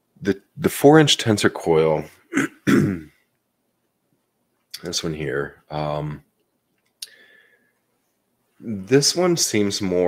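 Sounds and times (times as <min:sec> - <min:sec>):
man clearing his throat: 0:02.3 - 0:03.2.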